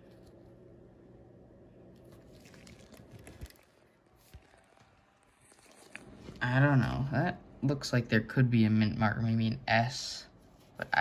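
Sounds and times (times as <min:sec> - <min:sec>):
faint handling sounds: 0:00.0 - 0:00.8, 0:01.7 - 0:07.0.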